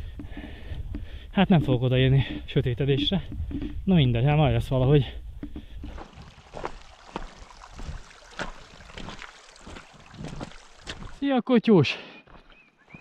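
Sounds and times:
shallow water trickling over stones: 5.6s - 11.2s
small water splashes: 5.6s - 11.2s.

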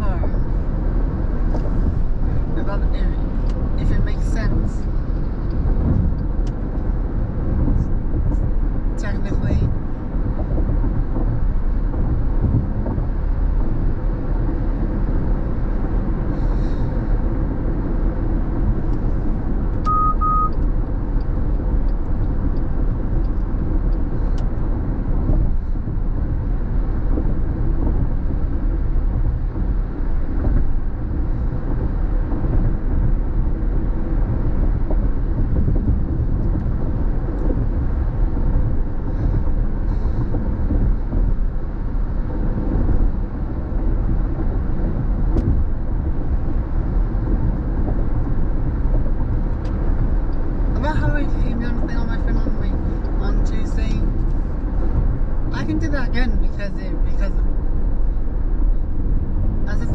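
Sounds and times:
road and tyre noise inside car: 0.0s - 59.9s
short high beeps: 19.9s - 20.6s.

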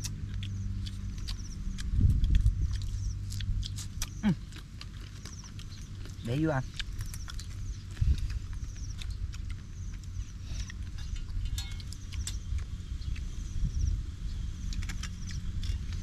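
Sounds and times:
wind on microphone: 1.8s - 3.7s, 6.9s - 9.6s, 10.4s - 16.0s.

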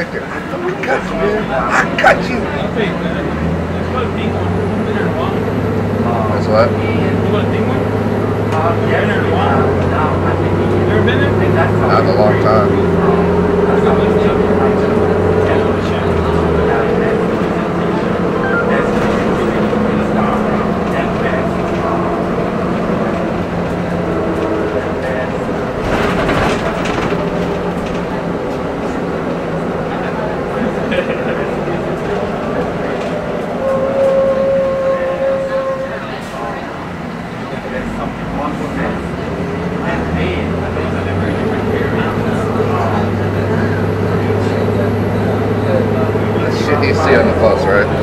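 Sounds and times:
bus engine humming: 0.0s - 48.0s
passengers' voices: 0.0s - 48.0s.

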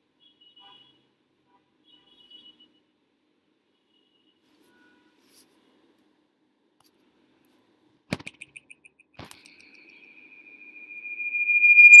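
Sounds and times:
high steady whistle: 9.7s - 12.0s
high-pitched pips: 9.8s - 12.0s.

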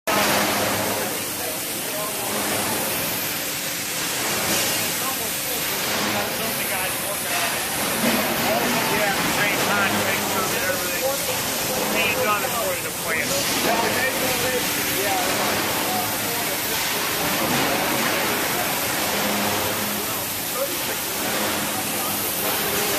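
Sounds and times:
people talking: 0.1s - 3.3s, 4.4s - 22.9s
industrial hall noise with low hum: 0.1s - 22.9s.

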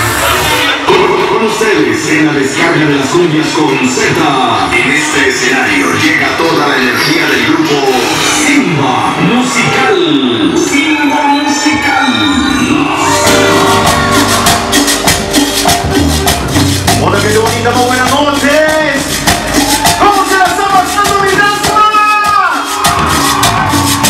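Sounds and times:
live cumbia band playing: 11.4s - 24.0s
scraped and shaken percussion: 13.3s - 21.8s.

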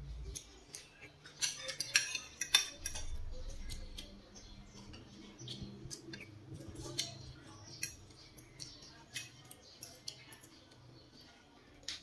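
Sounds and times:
cutlery clinking on a ceramic plate: 0.7s - 4.1s.

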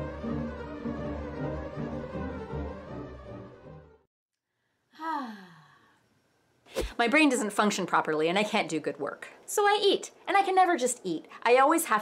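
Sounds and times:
woman sighing: 4.9s - 6.0s.

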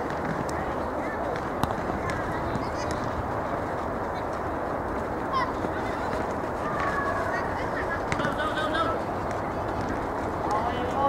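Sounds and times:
outdoor soccer game noise: 0.0s - 11.0s.

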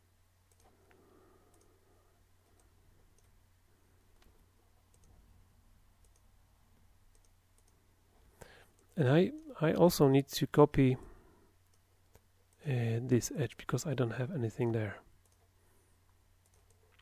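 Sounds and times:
low steady hum: 0.0s - 17.0s
computer mouse clicks: 0.5s - 1.8s, 2.4s - 3.4s, 4.2s - 5.3s, 6.0s - 6.3s, 7.1s - 7.8s, 15.2s - 15.5s, 16.4s - 17.0s.

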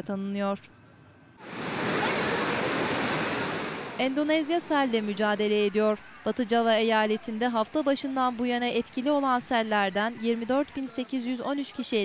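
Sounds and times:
flood torrent rushing: 1.4s - 5.6s.

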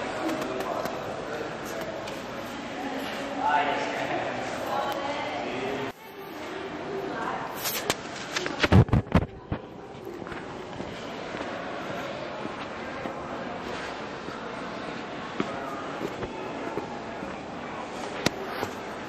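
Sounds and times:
distant people talking: 0.0s - 19.0s.

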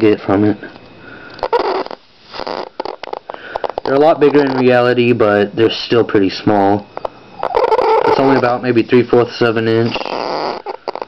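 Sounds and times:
electric arc crackling: 1.4s - 5.2s.

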